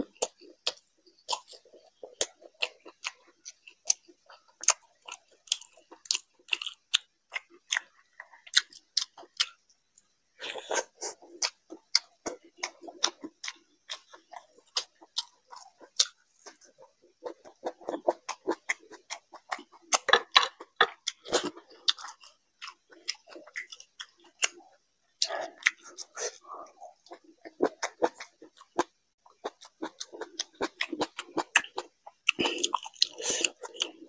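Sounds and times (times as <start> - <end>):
wet chewing clicks and smacks: 0.0 - 34.0.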